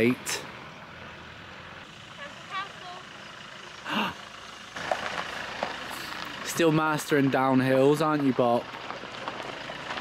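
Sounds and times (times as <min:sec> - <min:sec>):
distant vehicle running: 0:00.0 - 0:10.0.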